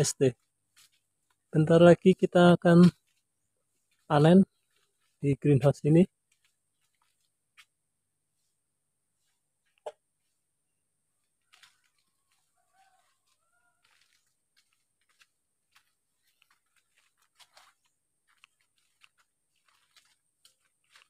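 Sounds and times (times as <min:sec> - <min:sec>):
faint clicks and rustles: 0:00.4 - 0:01.5, 0:02.9 - 0:05.2, 0:06.1 - 0:07.8, 0:11.1 - 0:21.0.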